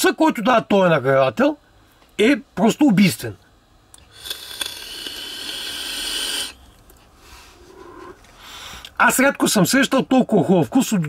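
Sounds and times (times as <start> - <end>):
e-cigarette air hissing: 4.0 - 9.0
person breathing out: 4.1 - 6.6, 7.2 - 9.0.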